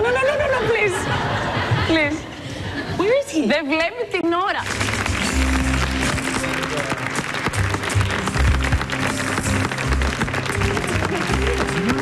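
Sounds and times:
studio audience applauding: 4.6s - 12.0s.

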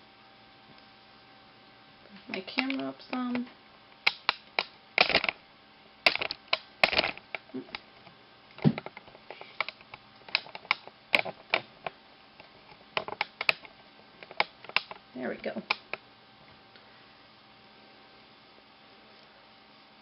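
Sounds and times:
knitting needles clicking: 2.3s - 5.4s, 6.1s - 7.8s, 8.8s - 11.7s, 13.0s - 15.0s
camera handling knocks: 8.6s - 9.0s.

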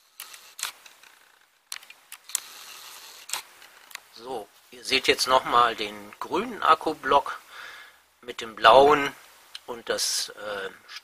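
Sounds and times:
camera lens zoom whir: 0.0s - 4.0s.

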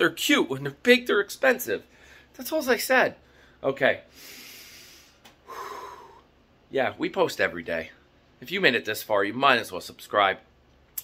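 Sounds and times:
man breathing out through nose: 3.3s - 6.3s.

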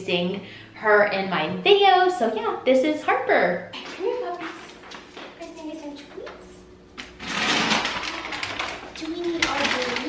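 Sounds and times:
plastic bag crinkling: 7.0s - 10.0s.

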